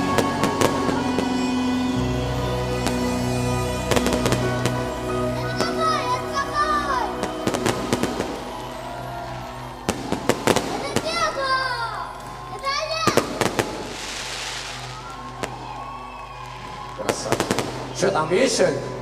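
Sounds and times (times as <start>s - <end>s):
fireworks bangs and crackles: 0.0s - 6.0s, 7.1s - 9.0s, 9.6s - 18.5s
music: 0.0s - 19.0s.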